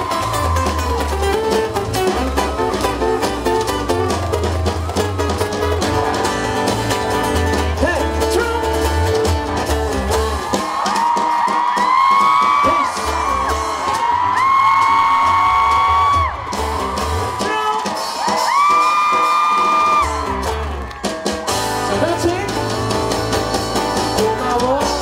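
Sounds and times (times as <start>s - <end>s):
live band playing: 0.0s - 25.0s.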